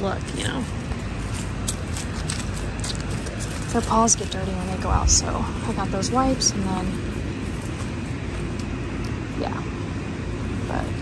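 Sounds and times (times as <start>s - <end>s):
low rumbling outdoor noise: 0.0s - 11.0s.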